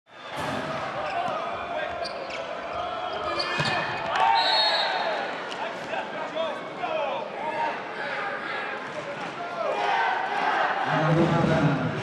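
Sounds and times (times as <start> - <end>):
crowd noise: 0.1 - 12.0
referee's whistle: 3.4 - 5.2.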